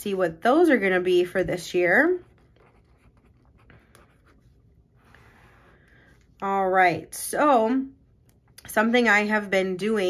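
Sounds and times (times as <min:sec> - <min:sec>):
pen scratching on paper: 0:02.2 - 0:05.6.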